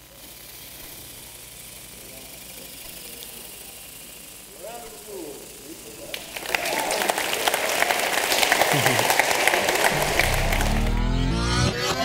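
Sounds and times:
audience applause: 6.1 - 11.8
low-pitched music sting: 9.9 - 12.0.

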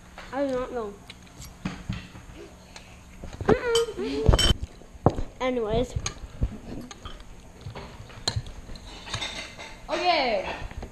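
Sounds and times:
utensils clinking on ceramic bowl: 8.2 - 10.7.

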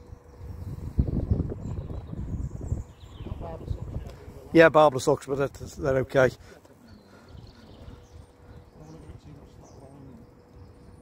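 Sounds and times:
wind rumble on microphone: 0.0 - 4.6, 7.2 - 11.0
faint steady hum: 0.0 - 11.0.

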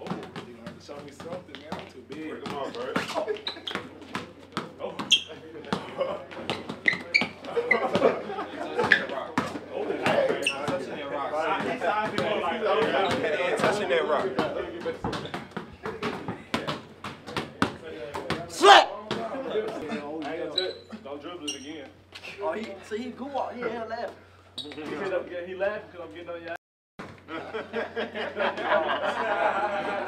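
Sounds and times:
basketballs bouncing on floor: 0.0 - 8.2, 11.5 - 19.3
young men talking and calling out: 4.7 - 26.4.

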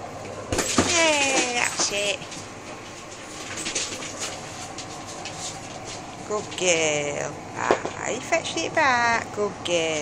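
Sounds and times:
dog paws clicking on tiles: 0.6 - 6.9.

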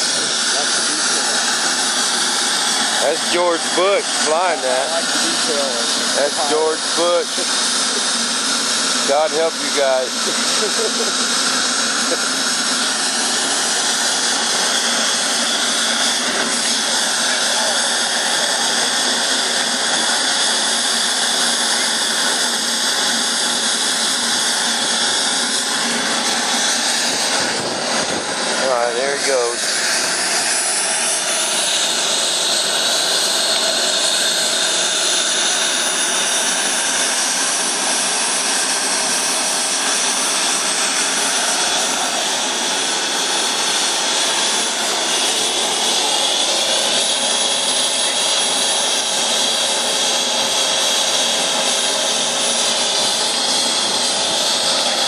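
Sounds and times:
model jet turbine running: 0.0 - 55.0.

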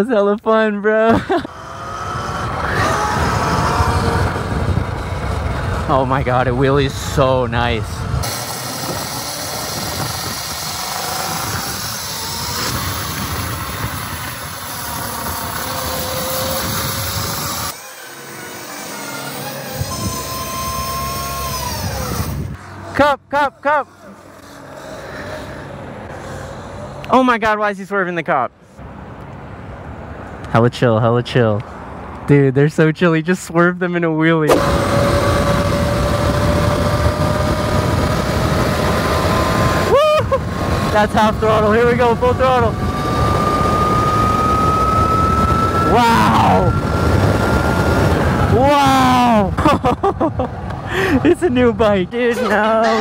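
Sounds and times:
electric dirt bike accelerating: 1.2 - 27.1, 34.5 - 51.2
vehicle running on road: 1.2 - 27.4, 28.6 - 30.8, 31.5 - 32.3, 34.5 - 53.0
faint motor whine: 1.4 - 27.1, 34.5 - 49.5
wind rumbling over microphone: 1.6 - 17.8, 19.7 - 22.8, 34.5 - 49.6.

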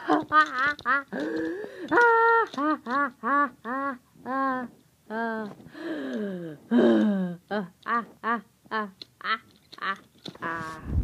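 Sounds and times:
person laughing in character voice: 2.0 - 4.7.

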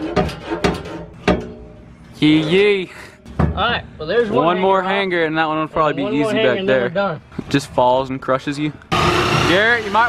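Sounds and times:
metal exhaust pipe knocks and clanks: 0.0 - 1.8, 3.3 - 3.7.

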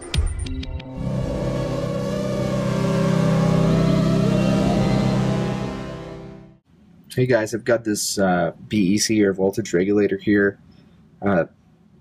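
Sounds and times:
low drone: 0.8 - 6.6
rising glide: 1.0 - 6.6.

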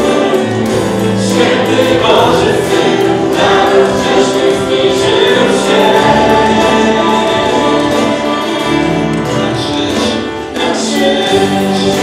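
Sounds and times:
electric guitar: 0.0 - 12.0
man singing: 0.0 - 12.0
strummed acoustic guitar: 0.0 - 12.0.

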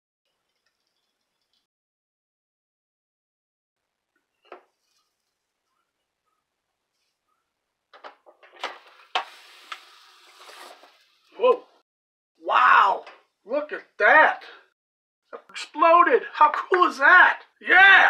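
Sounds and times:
hissing dough steaming: 8.9 - 11.0.

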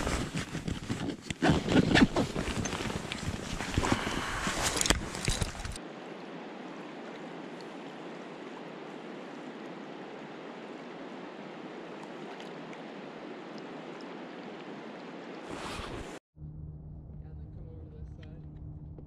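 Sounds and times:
clothing rustling: 0.0 - 5.8, 15.5 - 16.2
river water flowing: 2.9 - 15.6.

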